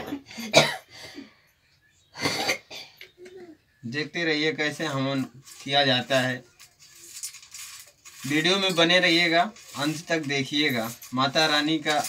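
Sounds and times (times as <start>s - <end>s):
man coughing: 0.0s - 0.9s, 2.2s - 3.0s.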